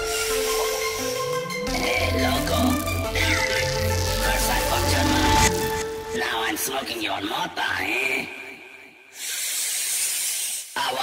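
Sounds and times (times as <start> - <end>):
held vocal note: 0.9 - 6.2.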